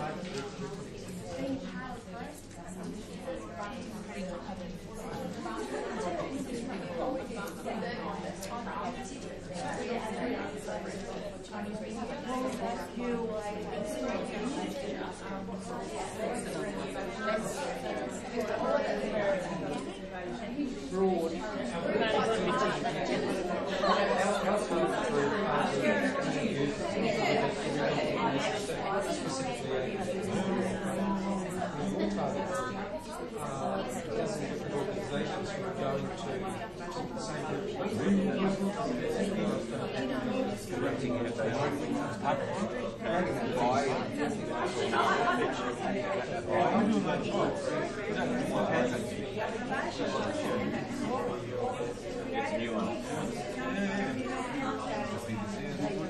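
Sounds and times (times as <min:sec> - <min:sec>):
hubbub of overlapping conversations: 0:00.0 - 0:56.0.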